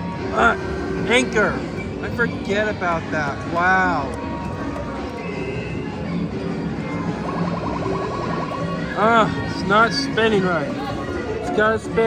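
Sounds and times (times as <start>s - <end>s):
din of busy arcade: 0.0s - 12.0s
electronic arcade music: 6.2s - 10.9s.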